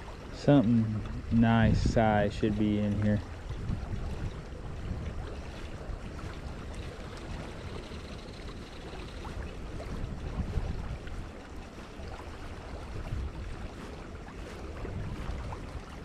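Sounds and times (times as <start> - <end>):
flowing creek water: 0.0 - 16.0
wind buffeting microphone: 0.0 - 16.0.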